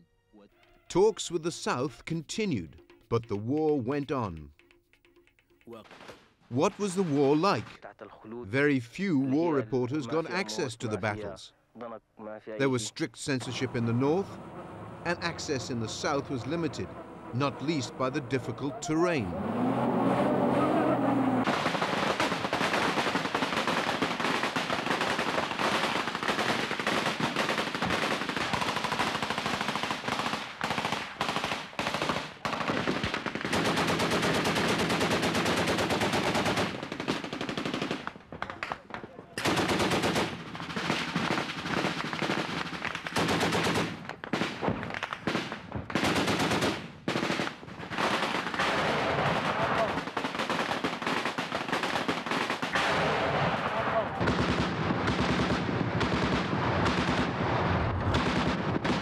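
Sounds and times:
automatic weapons fire: 0:21.4 - 0:38.7, 0:39.4 - 0:59.0.

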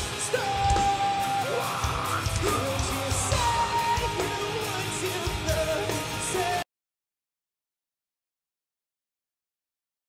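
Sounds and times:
metalcore band playing live: 0:00.0 - 0:06.6
person singing and yelling: 0:00.0 - 0:06.6.

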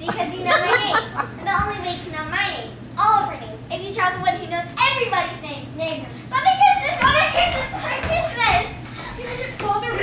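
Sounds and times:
children's excited voices: 0:06.3 - 0:10.0.

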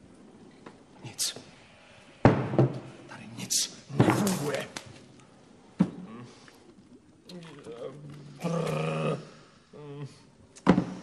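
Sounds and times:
low vocal growl: 0:07.3 - 0:10.2.

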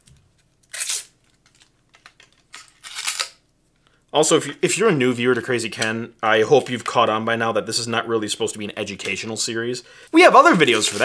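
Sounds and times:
plastic wrap crinkling and tearing: 0:00.3 - 0:03.4, 0:10.2 - 0:11.0.

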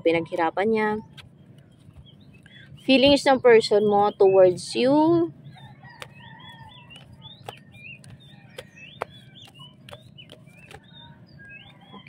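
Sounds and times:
high chirping calls: 0:00.3 - 0:12.0
chickens clucking: 0:04.1 - 0:12.0.

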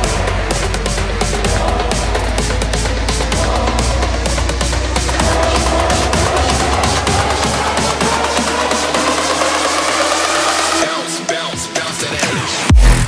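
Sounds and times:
rising synth line: 0:00.0 - 0:11.1
electronic dance beat: 0:00.0 - 0:13.0
heavy bass: 0:00.0 - 0:13.0.

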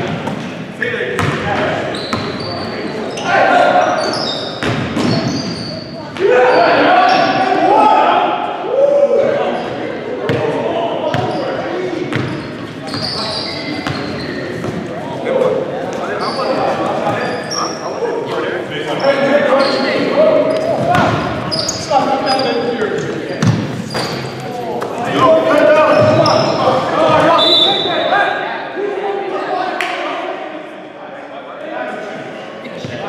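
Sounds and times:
basketball bouncing: 0:01.2 - 0:01.5
sneaker squeaks: 0:01.2 - 0:07.4, 0:11.1 - 0:14.8, 0:16.0 - 0:18.0, 0:18.9 - 0:28.2
players shouting: 0:06.1 - 0:11.4, 0:18.9 - 0:30.0.

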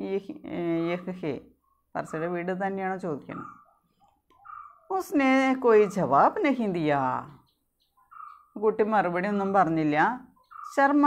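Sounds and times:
high-pitched animal calls: 0:02.0 - 0:02.5, 0:03.2 - 0:04.9, 0:07.4 - 0:08.6, 0:10.4 - 0:11.0.

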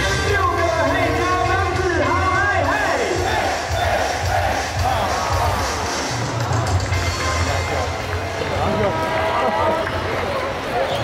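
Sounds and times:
cheer song over loudspeakers: 0:00.0 - 0:11.0
crowd cheering: 0:02.5 - 0:11.0.

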